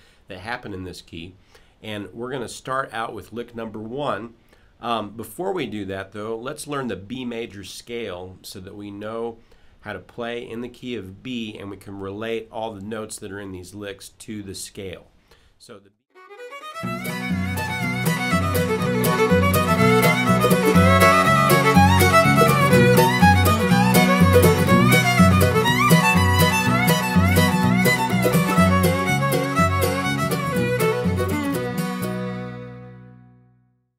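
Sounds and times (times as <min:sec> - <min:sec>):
fiddle playing quick runs: 0:16.2 - 0:33.1
guitar and bass accompaniment: 0:16.8 - 0:33.5.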